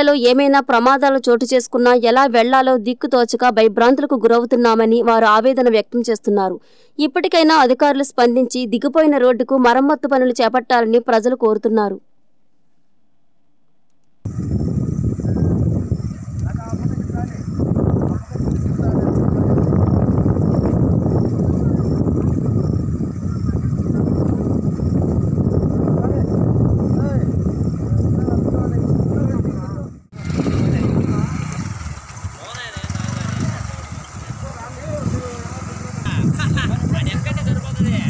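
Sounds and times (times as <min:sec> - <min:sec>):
wind buffeting microphone: 0:14.2 - 0:38.0
motorcycle engine at low revs: 0:30.1 - 0:37.2
men calling: 0:32.3 - 0:38.0.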